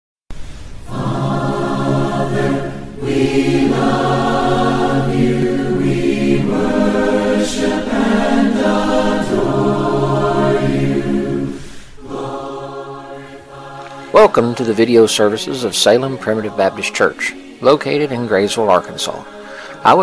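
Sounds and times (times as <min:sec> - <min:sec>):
choir singing unaccompanied: 0:00.8 - 0:20.0.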